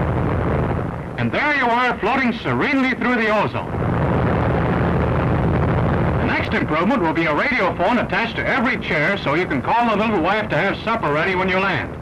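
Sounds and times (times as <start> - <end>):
airplane engines droning: 0.0 - 12.0.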